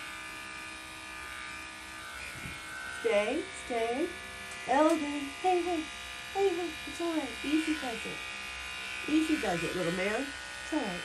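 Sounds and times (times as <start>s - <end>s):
electric clipper buzzing: 0.0s - 11.0s.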